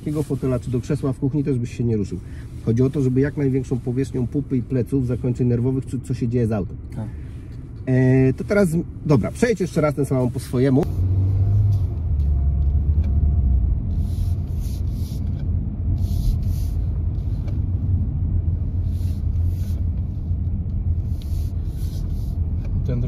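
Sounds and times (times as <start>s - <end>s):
car engine and road rumble: 0.0s - 23.0s.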